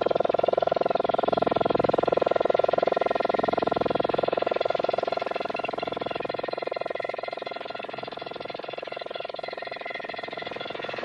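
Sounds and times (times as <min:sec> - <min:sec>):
pulsing synthesizer tone: 0:00.0 - 0:11.0.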